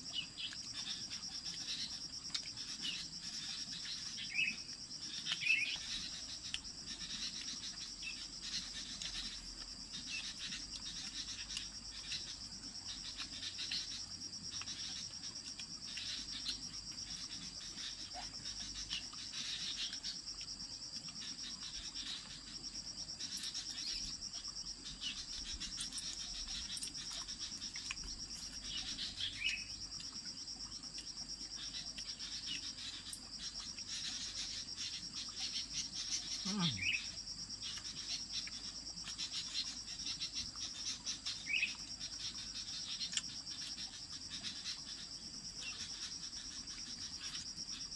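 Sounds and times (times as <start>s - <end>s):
insects droning: 0.0s - 47.9s.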